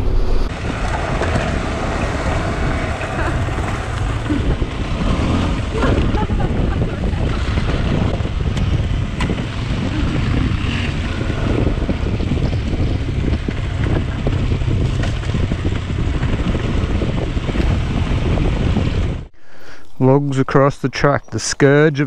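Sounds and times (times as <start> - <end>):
motorcycle riding on dirt: 0.0 - 19.3
wind buffeting microphone: 0.0 - 20.2.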